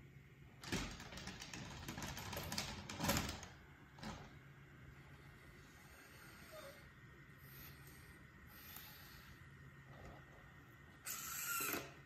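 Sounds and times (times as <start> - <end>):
wheel rollers clicking on tiles: 0.6 - 4.2.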